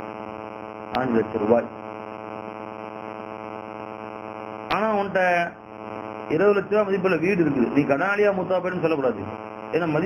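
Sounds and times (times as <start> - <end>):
steady buzzing hum: 0.0 - 10.0.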